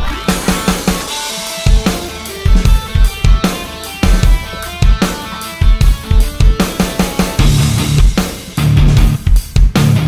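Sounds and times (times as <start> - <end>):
band music with drum kit: 0.0 - 10.0
heavy kick drum and snare hits: 0.3 - 10.0.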